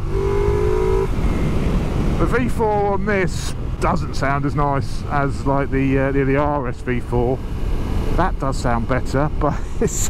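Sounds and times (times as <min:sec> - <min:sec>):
wind rush: 0:00.0 - 0:04.1
motorcycle engine accelerating: 0:00.0 - 0:04.4.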